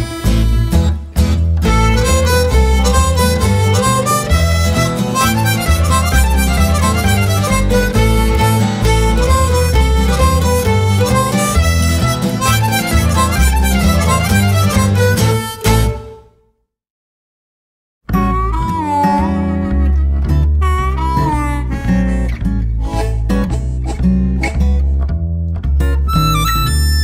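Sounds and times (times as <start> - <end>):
blues band music: 0.0 - 16.3, 18.1 - 27.0
harmonica playing lead: 0.0 - 16.3, 18.2 - 25.1, 26.0 - 27.0.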